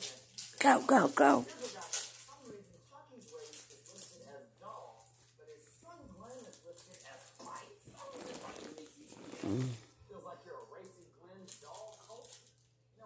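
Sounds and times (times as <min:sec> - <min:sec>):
faint voices talking quietly: 0:00.0 - 0:13.0.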